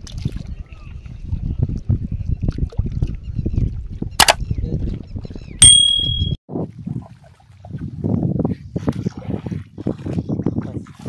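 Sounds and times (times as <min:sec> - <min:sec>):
wind rumbling on microphone: 0:00.0 - 0:05.6, 0:06.5 - 0:11.0
sharp click: 0:04.2 - 0:04.4
loud ringing ding: 0:05.6 - 0:06.4.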